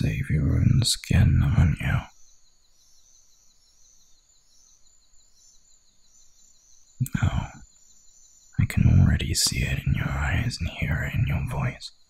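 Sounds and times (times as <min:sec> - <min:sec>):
low hiss: 0:00.0 - 0:12.0.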